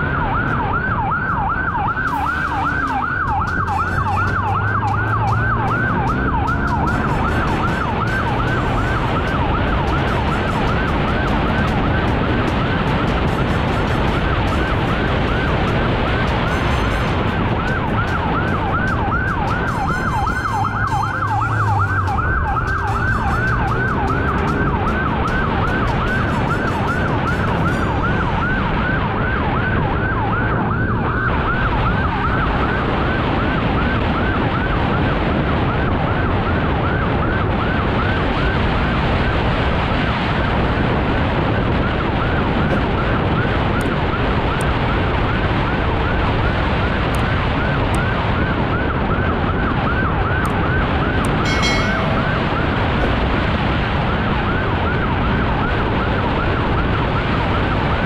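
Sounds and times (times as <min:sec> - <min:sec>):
motorcycle siren sweeping: 0:00.0 - 0:58.0
road and wind noise: 0:00.0 - 0:58.0.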